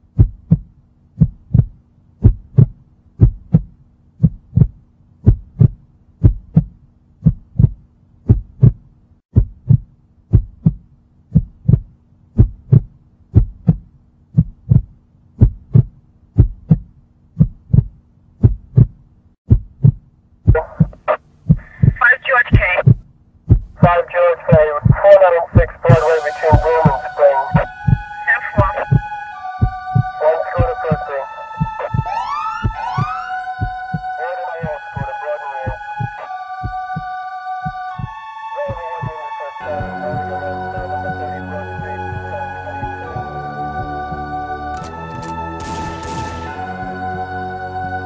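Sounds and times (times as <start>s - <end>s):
heartbeat thumps: 0.0s - 44.2s
synth music: 25.9s - 48.0s.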